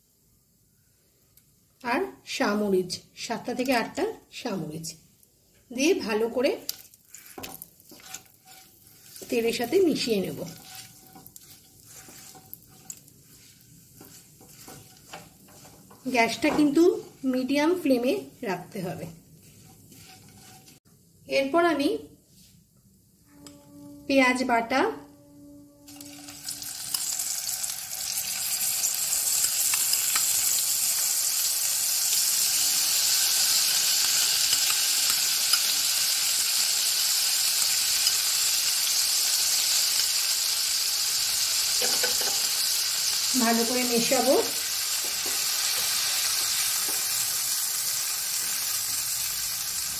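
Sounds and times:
spices sizzling in hot oil: 1.8 - 21.8, 25.9 - 49.9
spatula scraping pan: 6.6 - 20.8, 41.8 - 42.6, 44.0 - 47.4.

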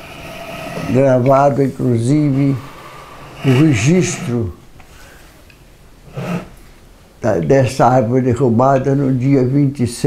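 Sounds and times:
man sniffing: 2.1 - 5.3, 6.1 - 6.6.

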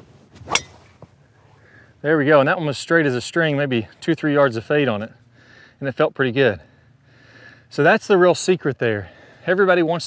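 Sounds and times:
golf club whoosh: 0.3 - 1.0.

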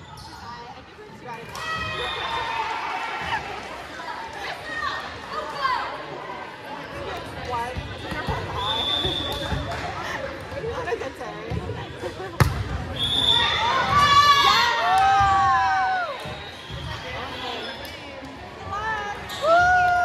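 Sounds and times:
gym chatter: 0.0 - 20.0.

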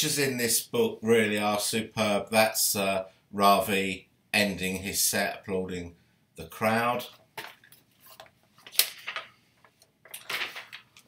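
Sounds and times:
book pages rustling: 7.4 - 11.0.

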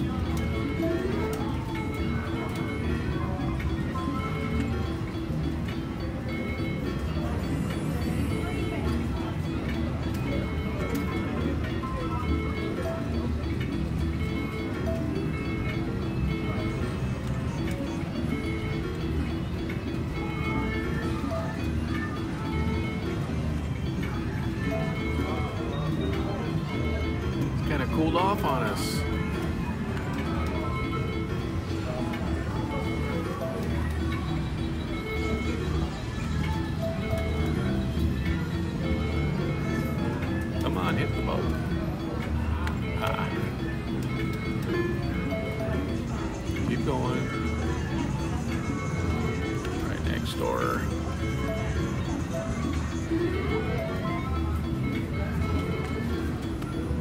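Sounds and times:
gaming machine music and chimes: 0.0 - 57.0
murmur of voices: 0.0 - 57.0.

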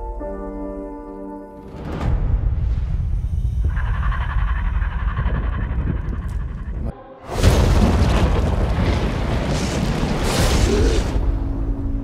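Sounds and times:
deep continuous rumble: 3.2 - 7.0.

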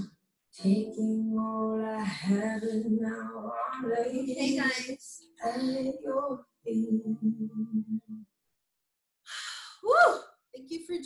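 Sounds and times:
woman speaking: 4.3 - 5.0, 10.6 - 11.0.

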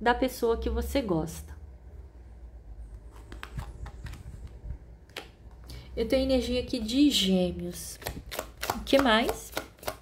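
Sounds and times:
cards clicking and tapping: 3.2 - 5.7, 8.0 - 10.0.

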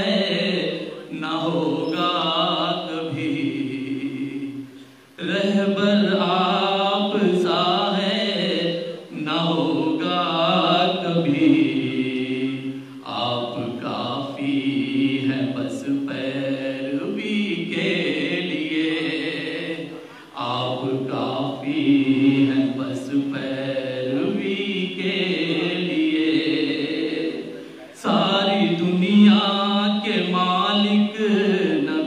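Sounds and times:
man chanting poetry through pa: 0.0 - 4.6, 5.2 - 32.0.

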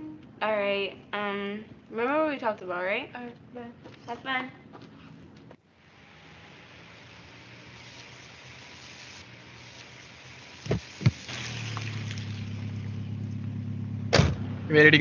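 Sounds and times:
faint open air hiss: 0.0 - 13.8
car engine idling: 9.2 - 15.0
car door clunks: 14.1 - 14.4.

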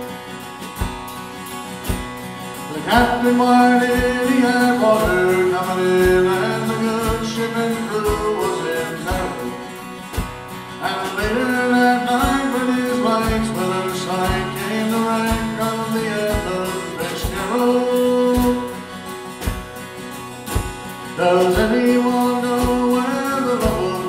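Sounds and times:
steady drum beat: 0.0 - 24.0
strummed acoustic guitar: 0.0 - 24.0.

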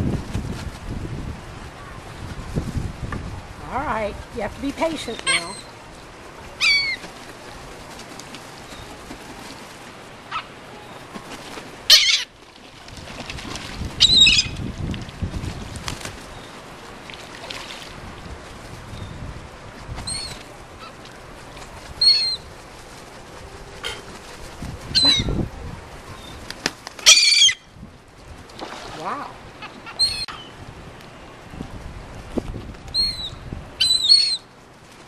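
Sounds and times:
wings flapping: 0.0 - 30.3, 31.4 - 35.0
seagulls calling: 4.9 - 7.8, 8.5 - 12.4, 14.0 - 14.6, 20.0 - 22.6, 23.2 - 25.5, 26.1 - 27.7, 29.0 - 30.6, 32.9 - 34.5.

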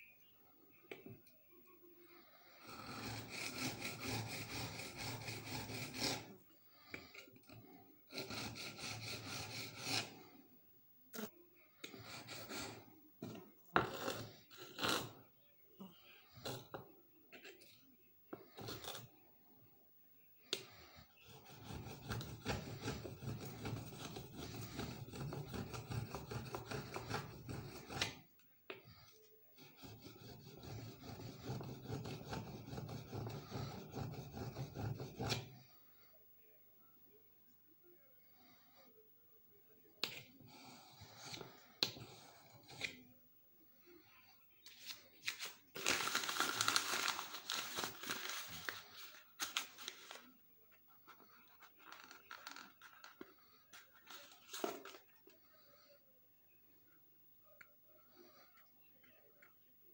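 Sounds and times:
paper crumpling: 44.6 - 50.3, 51.0 - 55.2.

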